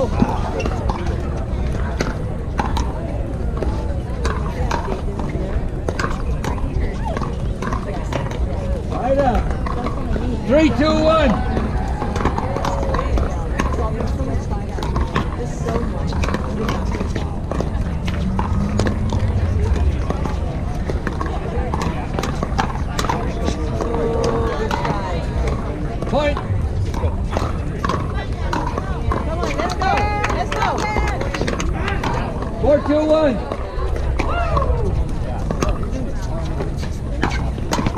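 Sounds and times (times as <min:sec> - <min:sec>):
background chatter of voices: 0:00.0 - 0:37.9.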